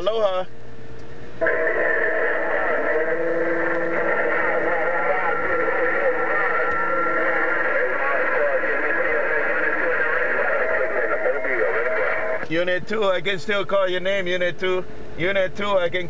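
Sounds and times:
radio static: 1.4s - 13.3s
faint garbled radio voices: 1.4s - 16.0s.

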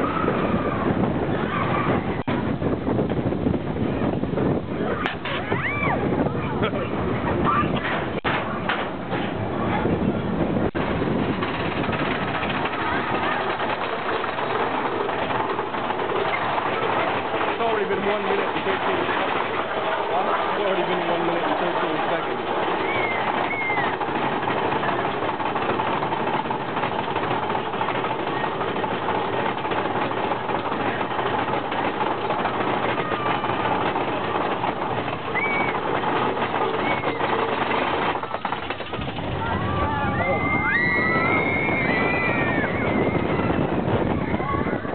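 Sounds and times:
roller coaster rattling on track: 0.0s - 44.9s.

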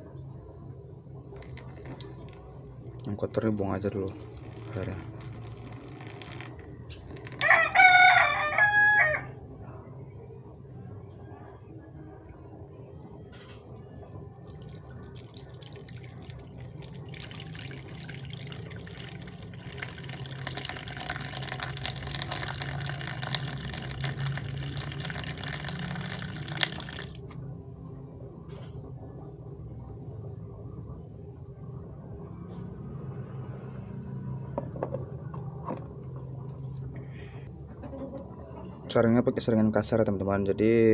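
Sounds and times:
water poured into basin: 1.4s - 7.4s, 12.3s - 27.4s.

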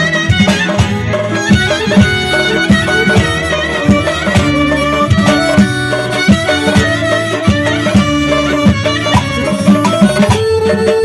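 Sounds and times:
steady drum beat: 0.0s - 10.6s
clarinet folk melody: 0.0s - 11.0s.

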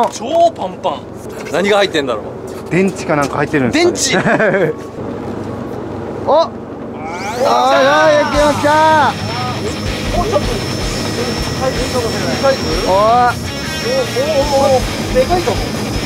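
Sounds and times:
fishing reel motor whining: 7.1s - 16.0s.

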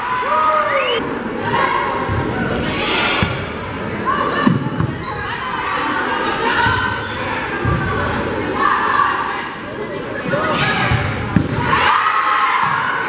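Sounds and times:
crowd voices echoing: 0.0s - 13.0s.

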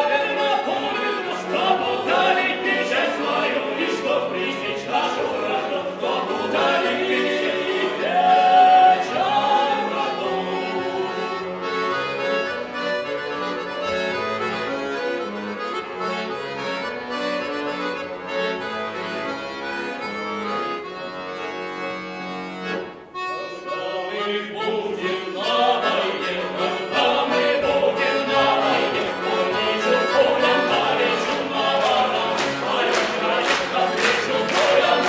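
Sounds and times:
button accordion playing: 0.0s - 35.0s.

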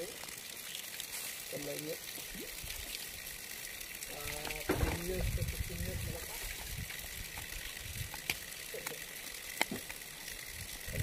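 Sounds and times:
running water: 0.0s - 11.0s.

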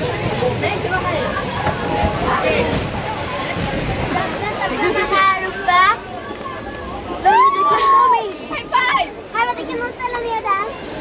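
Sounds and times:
girls chattering: 0.0s - 11.0s.

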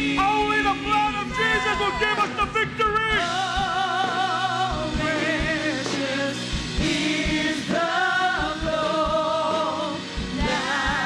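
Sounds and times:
band with steady drum beat: 0.0s - 11.0s
woman singing with vibrato: 1.3s - 2.4s.

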